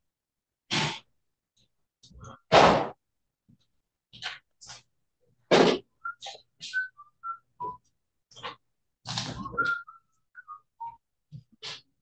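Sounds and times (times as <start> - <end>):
high whistled chirps: 6.0 - 7.8, 9.4 - 11.0.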